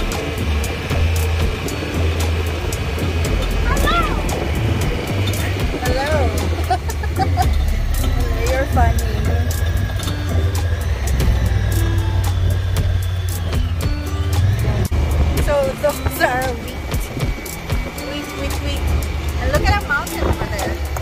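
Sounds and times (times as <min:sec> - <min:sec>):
background music: 0:00.0 - 0:21.0
vehicle engine rumbling: 0:00.0 - 0:21.0.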